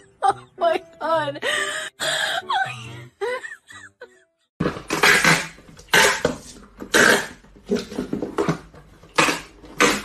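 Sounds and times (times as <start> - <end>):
box cutter slicing packing tape: 4.6 - 7.9, 9.1 - 10.0.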